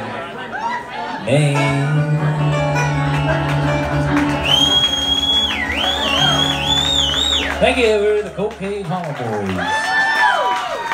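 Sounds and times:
bluegrass string band playing: 1.3 - 9.5
audience member whistling: 4.2 - 7.6.

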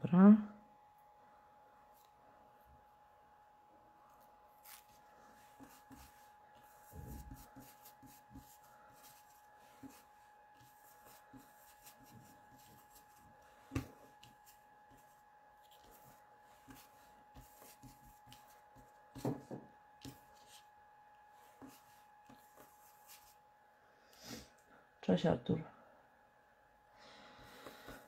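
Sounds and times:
faint steady hum: 0.0 - 28.0
ink tool rubbing on card: 4.2 - 19.3.

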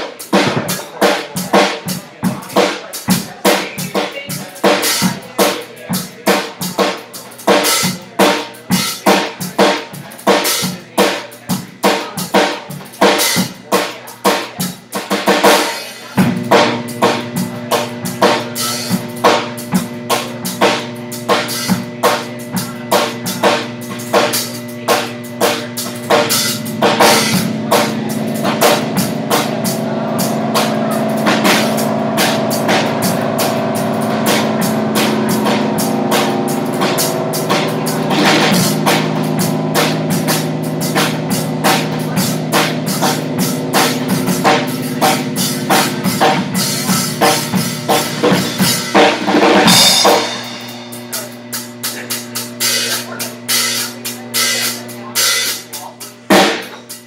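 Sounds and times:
drum kit playing: 0.0 - 57.0.

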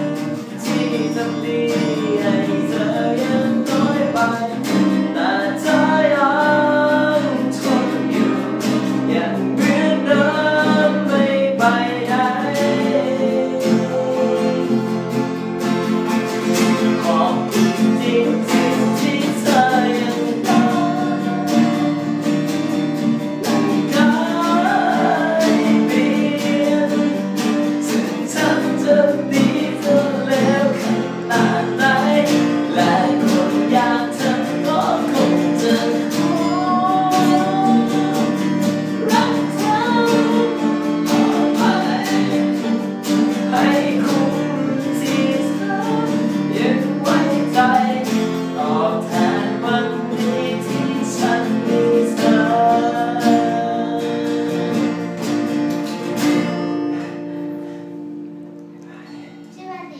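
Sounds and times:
man singing: 0.0 - 55.0
acoustic guitars strummed: 0.0 - 59.9.

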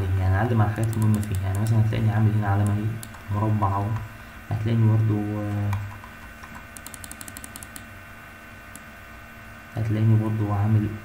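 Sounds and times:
faint steady background hum: 0.0 - 11.0.

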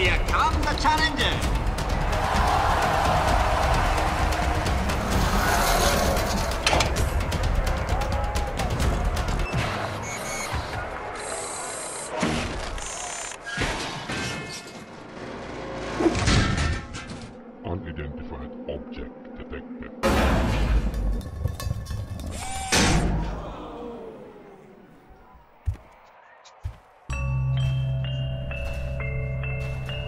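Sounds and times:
music: 0.0 - 10.5, 27.1 - 30.0.

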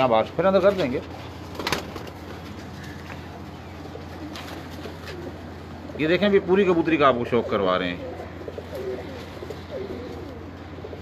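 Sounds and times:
pigeons cooing: 0.6 - 11.0.

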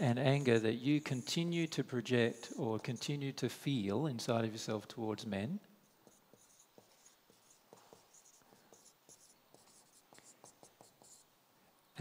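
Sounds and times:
marker pen scratching on paper: 0.0 - 3.3, 5.8 - 11.3.

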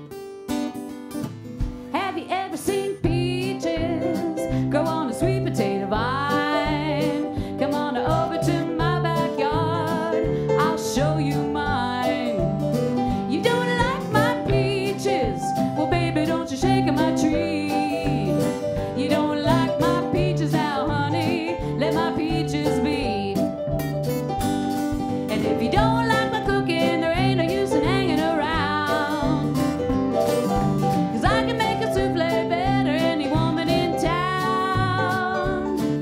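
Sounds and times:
strummed acoustic guitar: 0.0 - 17.3, 18.0 - 36.0
woman singing blues song: 1.8 - 23.6, 25.2 - 29.7, 31.0 - 36.0.

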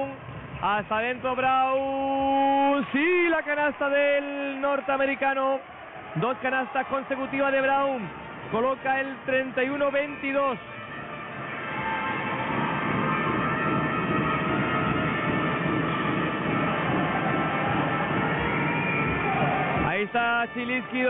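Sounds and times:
arena crowd noise: 0.0 - 21.0
music: 8.1 - 21.0.

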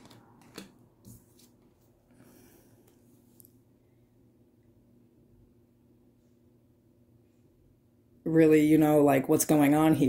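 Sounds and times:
cards clicking and tapping: 0.0 - 1.5.

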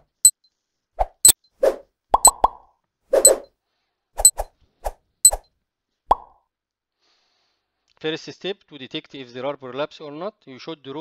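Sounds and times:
short clicks and plops: 2.2 - 3.4.

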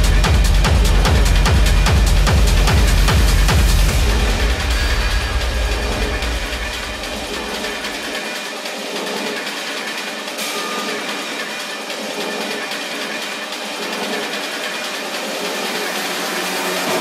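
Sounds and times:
techno music breakdown: 0.0 - 17.0.

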